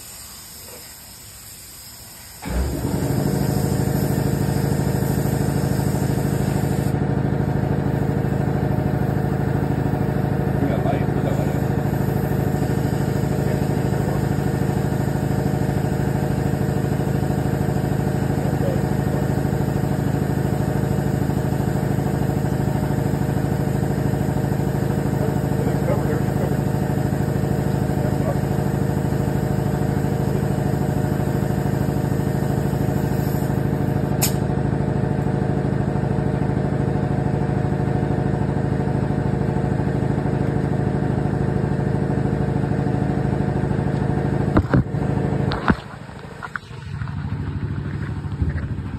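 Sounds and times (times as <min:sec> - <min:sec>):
motor droning: 0:02.4 - 0:35.3
short sharp click: 0:34.2 - 0:34.4.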